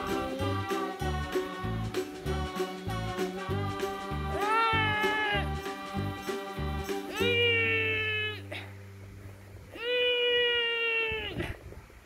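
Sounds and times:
cat meowing: 4.4 - 5.5, 7.1 - 8.5, 9.8 - 11.4.

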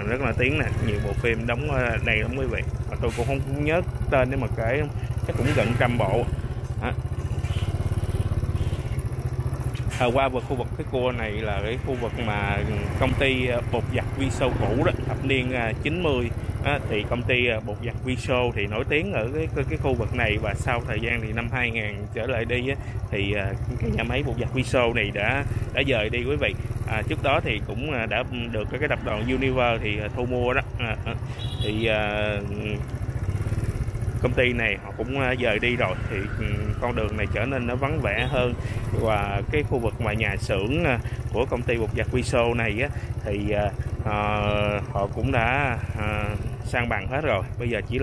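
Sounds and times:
motorbike engine running: 0.0 - 48.0.

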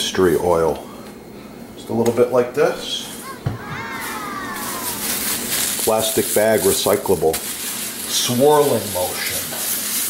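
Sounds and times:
plastic bag crinkling: 3.2 - 10.0.

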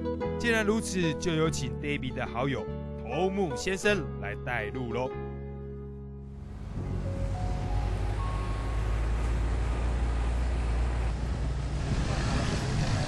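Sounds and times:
off-road vehicle engine rumble: 6.2 - 13.0
wind and road hiss: 6.4 - 13.0.

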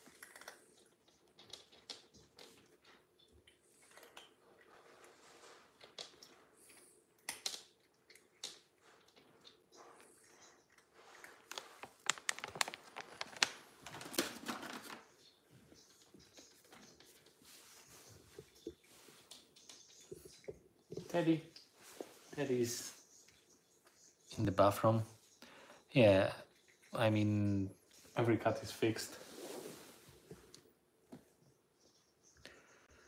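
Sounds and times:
cat crunching dry treats: 0.0 - 5.0, 5.7 - 14.9.

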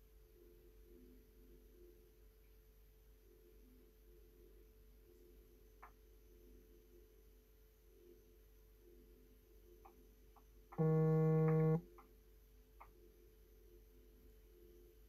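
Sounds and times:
faint phone line hum: 10.8 - 11.8
loud buzzing tone: 10.8 - 11.8.

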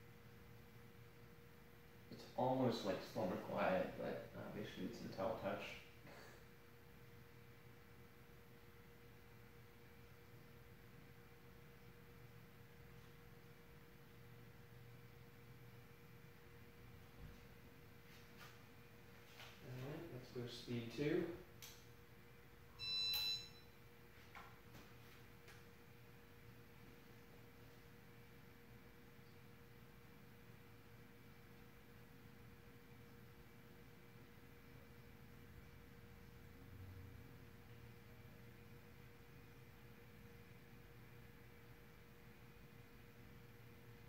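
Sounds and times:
ceiling fan motor hum: 0.0 - 44.0
short electronic beep: 22.8 - 23.7.

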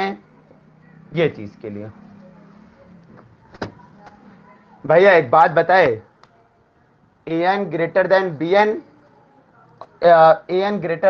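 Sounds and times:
man's voice: 7.3 - 8.8, 9.9 - 11.0.

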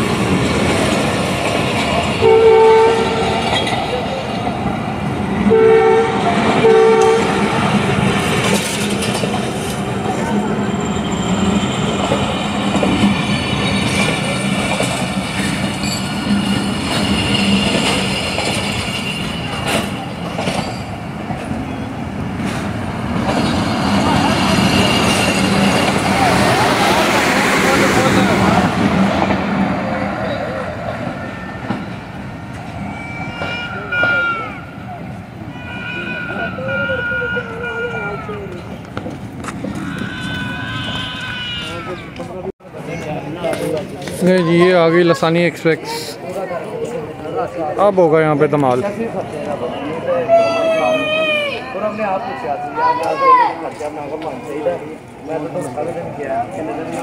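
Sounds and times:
train coaches rattling over rail joints: 0.0 - 50.1
train horn blasts: 2.2 - 3.4, 5.5 - 7.6, 33.3 - 34.4, 35.5 - 38.2, 39.8 - 42.0.

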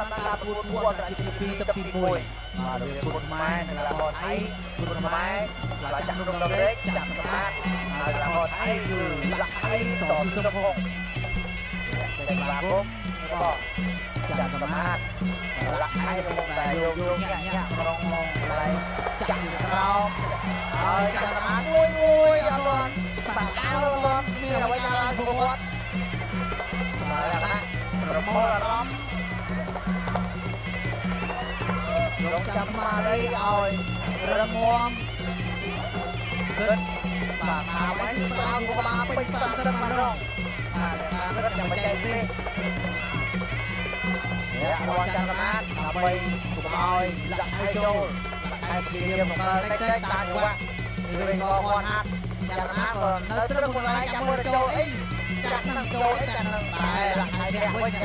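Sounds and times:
steady drum beat: 0.0 - 58.0
wavering reed oboe melody: 0.0 - 58.0.

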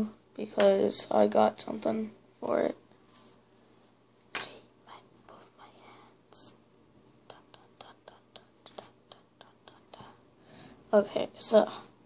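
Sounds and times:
soft whispery rustle: 1.8 - 10.3, 10.9 - 12.0.

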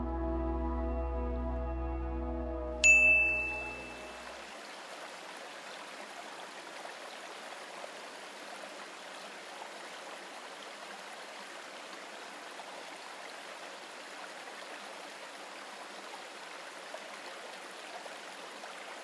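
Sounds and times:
stream water running: 2.8 - 19.0.

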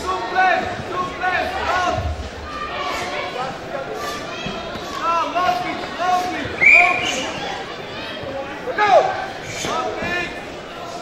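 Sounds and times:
echoing shouted calls: 6.1 - 7.7.

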